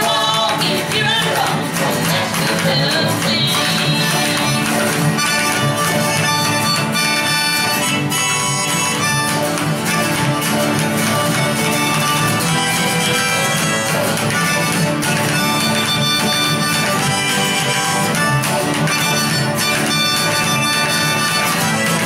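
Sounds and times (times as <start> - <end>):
acoustic guitars strumming: 0.0 - 22.0.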